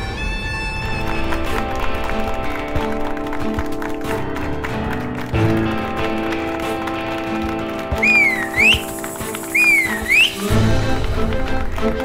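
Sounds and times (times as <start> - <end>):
whistled swooping tone: 8.0 - 10.6.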